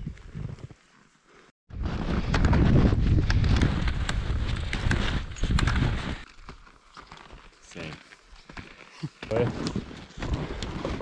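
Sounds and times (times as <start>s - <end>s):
wind rumble on microphone: 1.7s - 6.2s.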